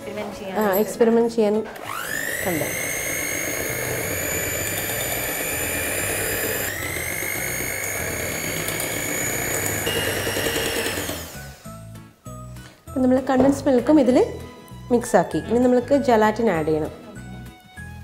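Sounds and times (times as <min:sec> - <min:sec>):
electric hand mixer whining: 0:01.7 - 0:11.9.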